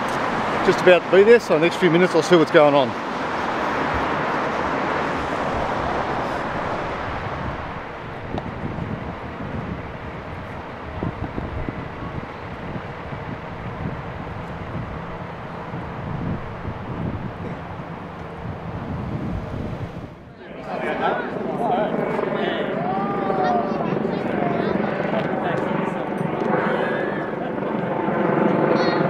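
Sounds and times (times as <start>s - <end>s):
road traffic noise: 0.0s - 29.0s.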